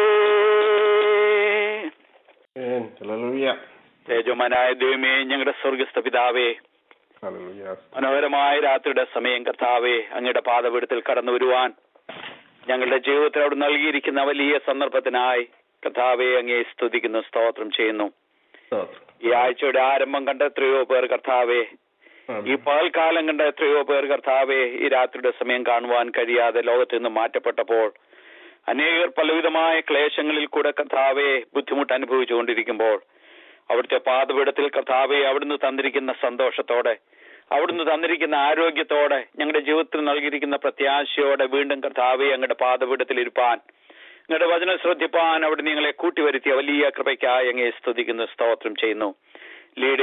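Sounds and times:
man speaking: 0.0s - 2.0s, 2.6s - 11.8s, 12.6s - 28.0s, 28.7s - 33.1s, 33.7s - 50.0s.

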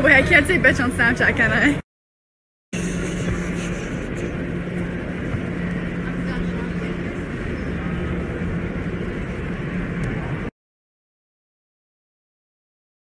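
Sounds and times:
low even hum: 2.8s - 10.5s.

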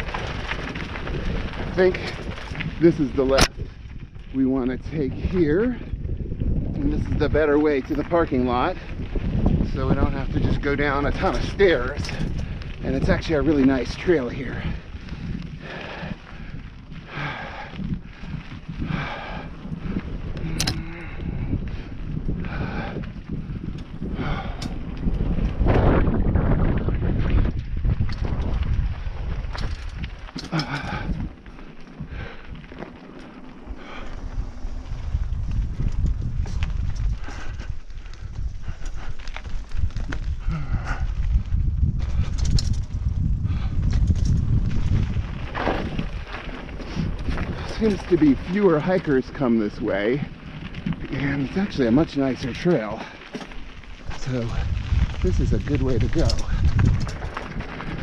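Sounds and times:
bike rattles and knocks: 0.0s - 58.0s
bike tyre rumble: 0.0s - 58.0s
wind on microphone: 0.0s - 58.0s.

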